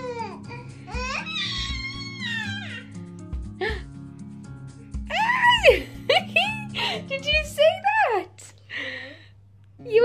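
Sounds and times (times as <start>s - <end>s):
baby whining and fussing: 0.0s - 3.8s
background music: 0.0s - 8.3s.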